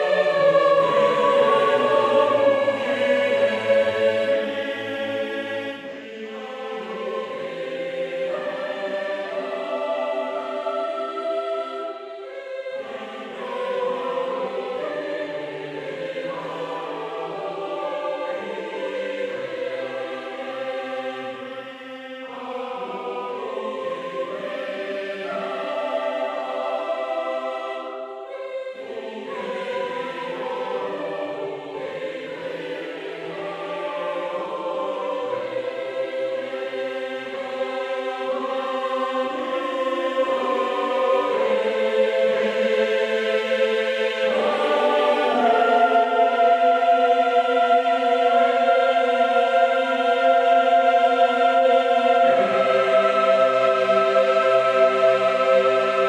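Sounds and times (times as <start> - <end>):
choir singing sustained chords: 0.0 - 56.0.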